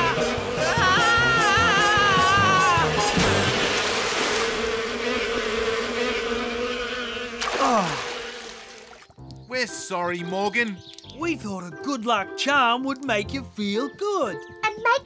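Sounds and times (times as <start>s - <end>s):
background music: 0.0s - 3.8s, 8.7s - 15.0s
cartoon bee swarm buzzing: 0.0s - 9.1s.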